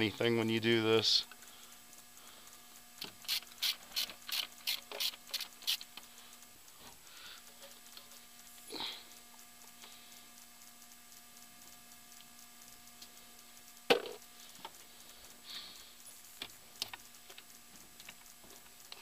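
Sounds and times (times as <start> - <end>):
ratchet wrench clicking: 3.0 - 6.1.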